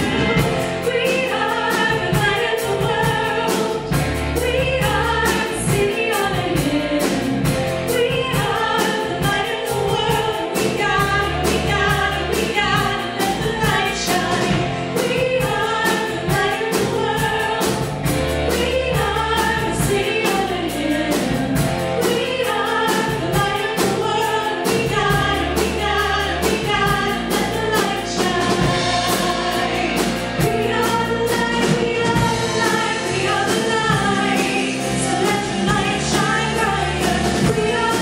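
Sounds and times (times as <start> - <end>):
congregation singing: 0.0 - 38.0
drum kit beat: 0.0 - 38.0
singers in harmony: 0.0 - 38.0.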